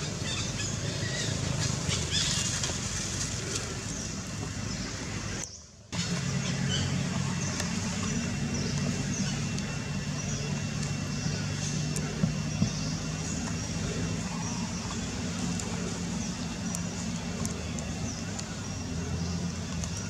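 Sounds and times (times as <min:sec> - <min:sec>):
low motor hum: 0:00.0 - 0:20.0.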